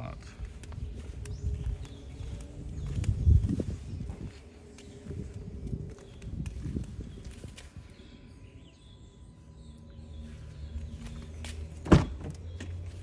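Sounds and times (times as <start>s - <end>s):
footsteps on pavement: 0.0s - 13.0s
car door unlatching clunk: 11.8s - 12.7s.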